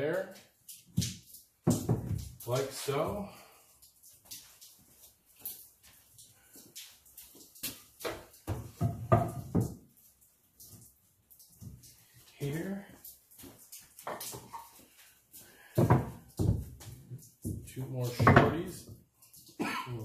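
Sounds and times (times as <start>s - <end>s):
wooden boards knocking together: 1.0s - 2.4s, 8.1s - 9.8s, 15.8s - 18.6s.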